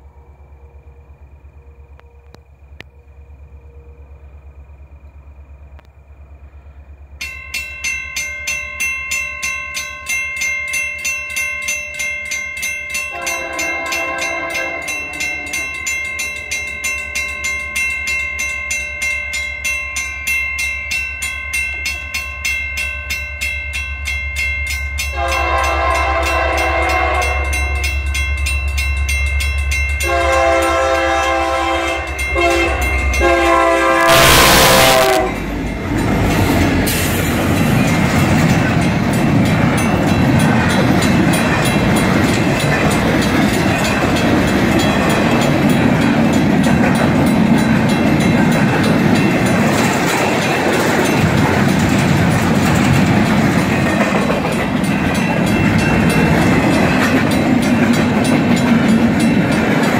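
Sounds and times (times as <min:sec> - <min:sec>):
locomotive engine rumble: 0:00.0 - 0:08.0, 0:25.2 - 0:59.9
train rolling clatter: 0:04.2 - 0:59.9
crossing bell dinging: 0:07.1 - 0:59.9
locomotive horn: 0:13.1 - 0:15.6, 0:25.1 - 0:27.8, 0:30.0 - 0:35.5.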